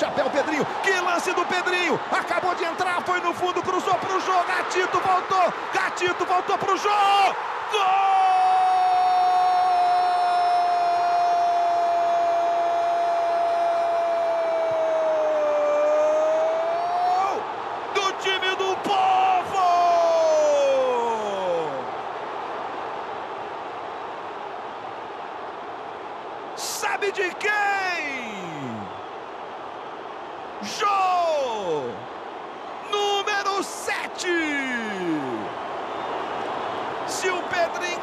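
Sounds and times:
stadium crowd noise: 0.0 - 38.0.

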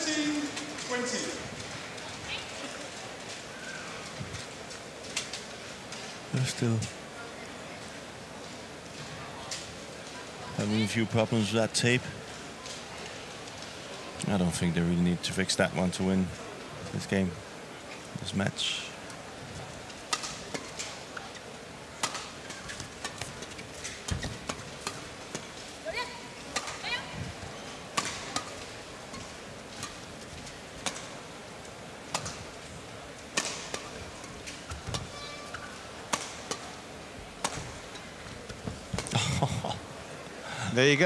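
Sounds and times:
arena crowd noise: 0.0 - 41.0
rackets hitting shuttlecock: 20.1 - 21.0, 22.0 - 26.9, 27.9 - 30.0, 30.8 - 31.2, 32.1 - 32.5, 33.3 - 36.8, 37.4 - 39.1
shoes squeaking on court: 20.5 - 24.7.

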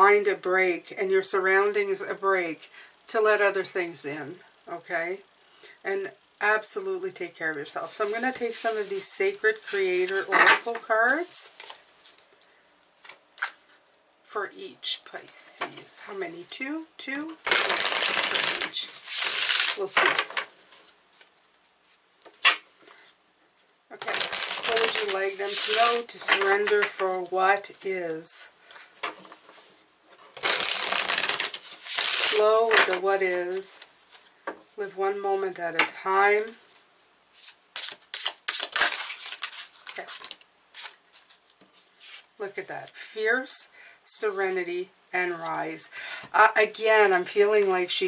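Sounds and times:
cards being shuffled: 8.0 - 12.4, 17.4 - 23.0, 24.0 - 28.2, 30.3 - 34.3, 37.4 - 42.3
cards sliding and flicking: 17.5 - 20.8, 30.4 - 33.6, 37.4 - 41.3.

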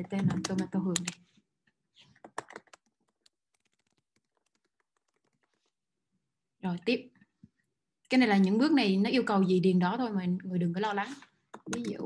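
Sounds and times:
typing on keyboard: 2.2 - 5.7.

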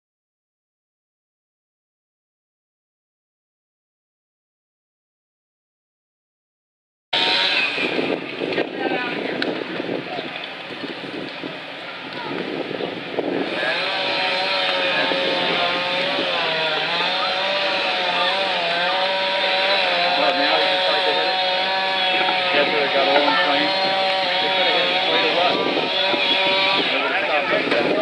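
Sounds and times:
engine running at high speed: 7.2 - 28.0
people talking: 8.6 - 10.5, 11.3 - 12.6, 13.4 - 28.0.

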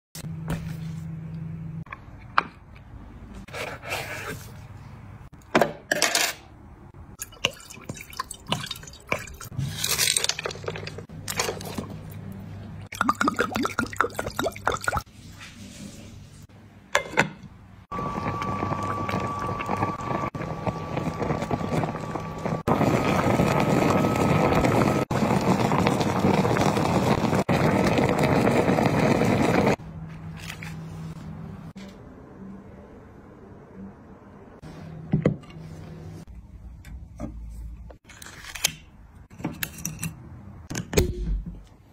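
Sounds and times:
liquid pouring into water: 12.9 - 15.0
liquid boiling hard in a pot: 17.9 - 29.8.

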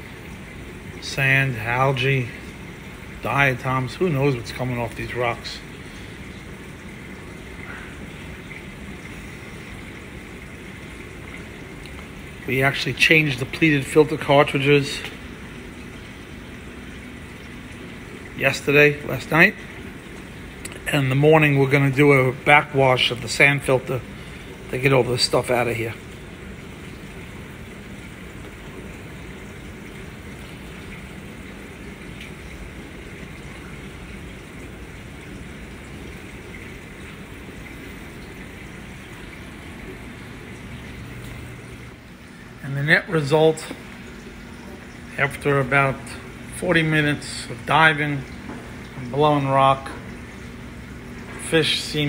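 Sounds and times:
aquarium water pumps humming: 0.0 - 52.0.

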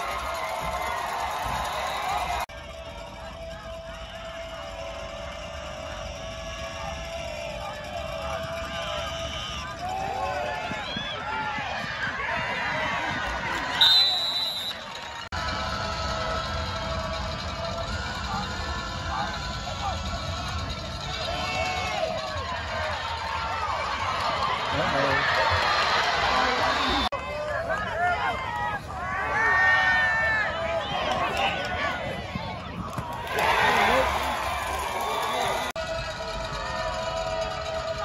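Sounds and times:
crowd shouting and cheering: 0.0 - 38.0
referee's whistle blast: 13.8 - 14.9.

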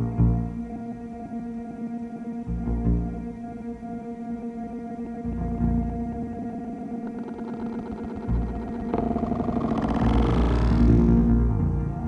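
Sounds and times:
bowed cello tones: 0.0 - 12.0
deep electronic drone: 0.0 - 12.0.

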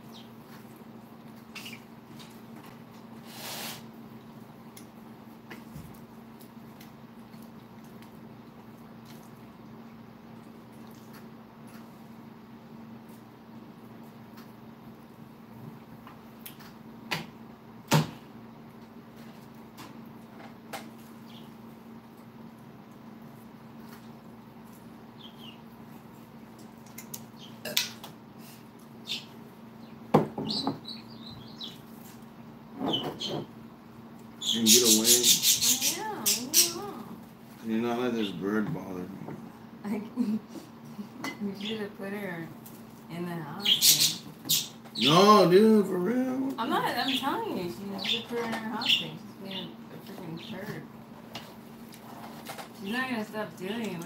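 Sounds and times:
bird chirping: 1.6 - 1.9, 21.2 - 21.5, 25.2 - 25.6, 29.0 - 31.8, 34.4 - 36.8, 43.6 - 45.2.

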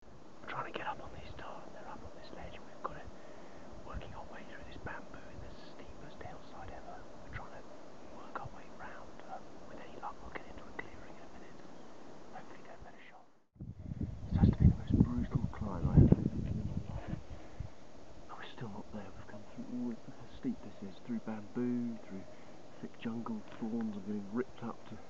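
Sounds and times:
faint background hiss: 0.0 - 25.0
man whispering: 0.4 - 11.7, 12.3 - 13.3, 14.2 - 17.3, 18.3 - 25.0.

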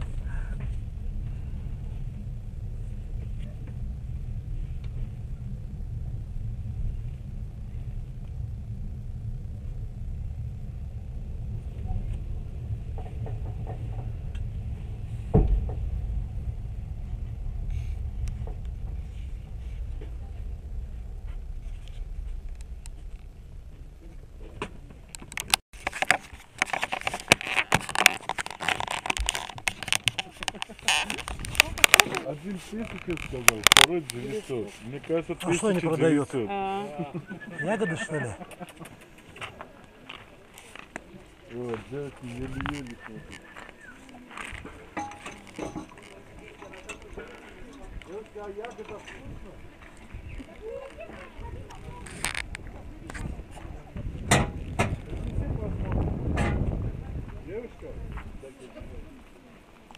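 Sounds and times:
low rumble in railway carriage: 0.0 - 25.6, 29.0 - 59.9
busy outdoor noise: 0.0 - 59.9.

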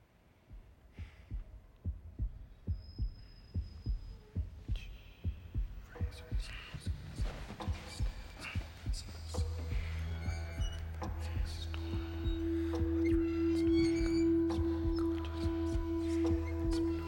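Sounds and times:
pounding heartbeat: 0.4 - 17.0
music: 1.0 - 17.0.

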